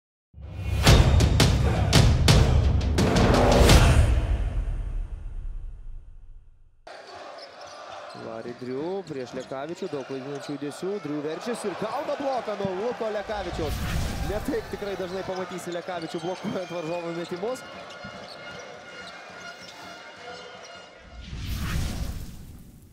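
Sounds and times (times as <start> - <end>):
murmur of crowd: 6.9 - 21.0.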